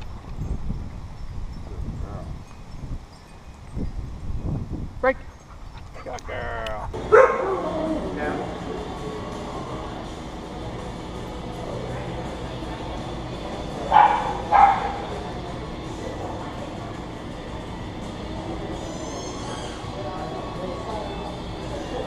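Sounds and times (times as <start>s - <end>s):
store background noise: 6.0s - 22.0s
dog barking: 7.1s - 7.8s, 13.9s - 15.1s
faint high squeaky chirps: 18.7s - 20.0s.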